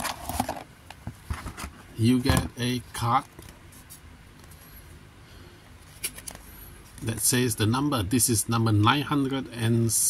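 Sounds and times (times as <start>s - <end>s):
plastic tray rustling and scraping: 0.0s - 2.5s.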